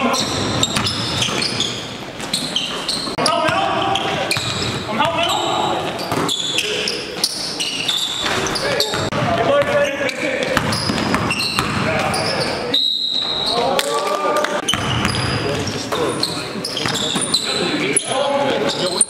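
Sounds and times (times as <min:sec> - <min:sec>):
sneaker squeaks on hardwood: 0:00.0 - 0:13.6, 0:14.6 - 0:19.0
basketball bouncing: 0:00.2 - 0:02.4, 0:03.0 - 0:06.4, 0:08.2 - 0:09.8, 0:10.4 - 0:12.2, 0:14.6 - 0:15.7.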